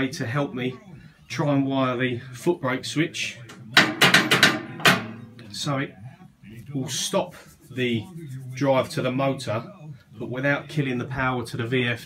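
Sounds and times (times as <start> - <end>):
sharp metallic knocks: 3.8 - 5.3.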